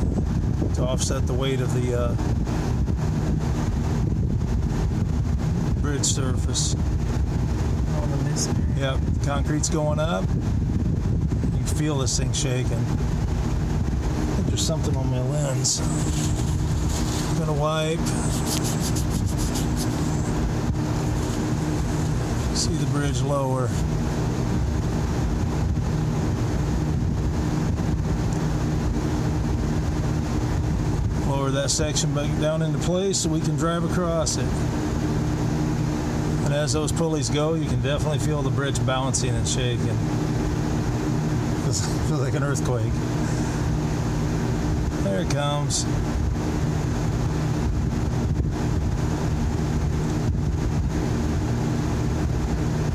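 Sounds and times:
low mechanical rumble and hum: 0.0 - 52.9
cloth rubbing on phone: 15.8 - 20.4, 21.0 - 21.7.

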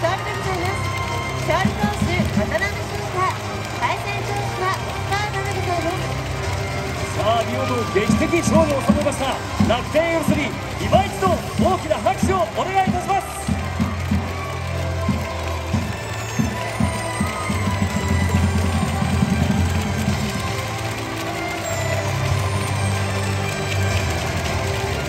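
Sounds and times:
crowd noise: 0.0 - 25.0
music over public-address system: 0.0 - 25.0.

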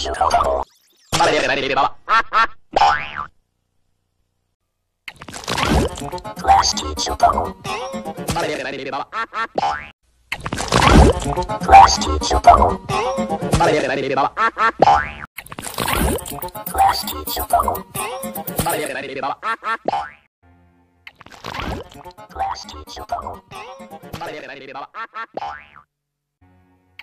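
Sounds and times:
cartoon boing sound effects: 9.5 - 9.9, 14.7 - 15.3, 19.8 - 20.3, 25.3 - 25.9
warbling voice-like sounds: 15.7 - 19.0.

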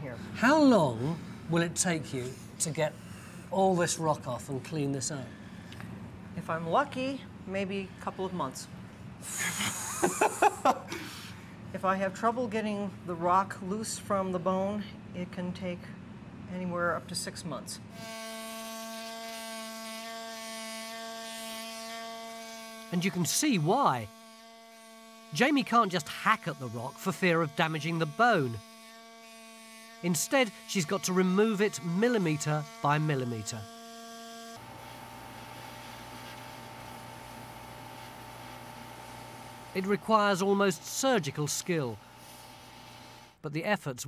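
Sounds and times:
air scribe buzzing on rock: 18.0 - 43.4
pneumatic air scribe buzzing: 42.0 - 43.4.

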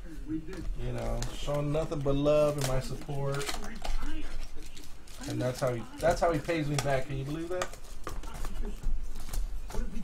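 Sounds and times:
packaging rustling: 0.8 - 10.0.

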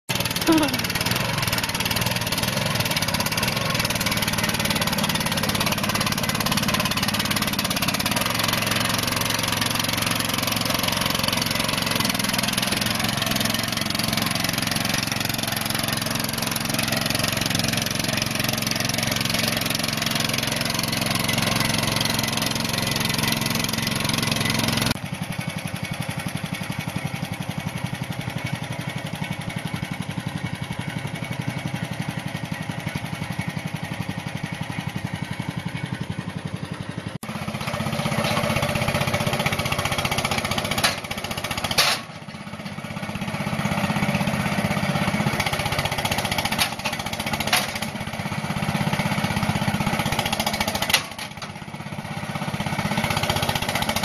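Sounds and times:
tractor engine running: 0.1 - 54.0.

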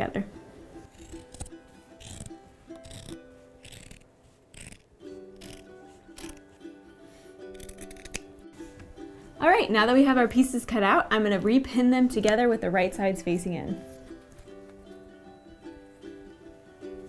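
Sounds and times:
background music: 0.0 - 17.0
scissors snipping fabric: 0.9 - 6.4, 7.5 - 8.3.

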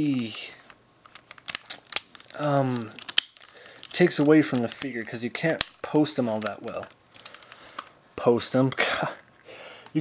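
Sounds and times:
plastic toy parts clicking: 1.1 - 7.9.

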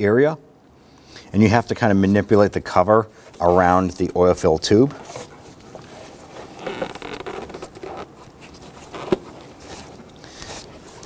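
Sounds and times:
plastic cover scraping: 5.0 - 11.0.

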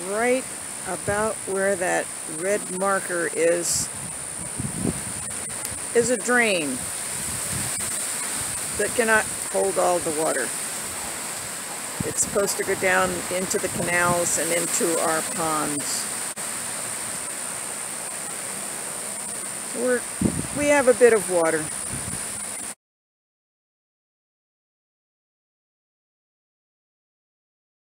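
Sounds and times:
steady outdoor hiss: 0.0 - 22.8
wind on microphone: 2.4 - 16.1, 19.8 - 22.7
steady high-pitched tone: 7.7 - 16.1.

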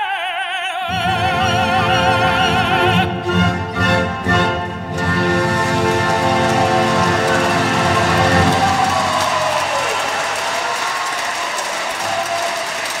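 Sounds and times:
male classical singer: 0.0 - 3.5
string orchestra: 0.9 - 10.1
audience applause: 4.9 - 13.0.

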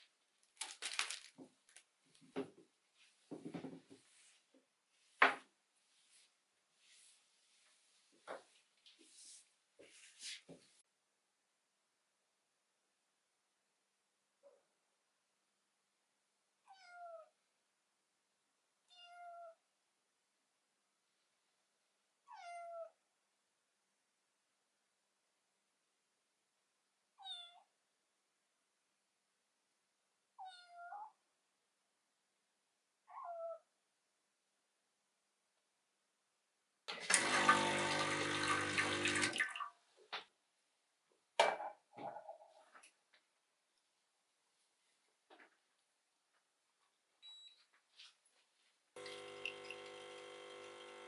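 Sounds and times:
kitten meowing: 16.7 - 17.3, 18.9 - 19.6, 30.4 - 31.1, 33.1 - 33.6
espresso machine pump humming: 37.0 - 39.1, 49.0 - 51.0.

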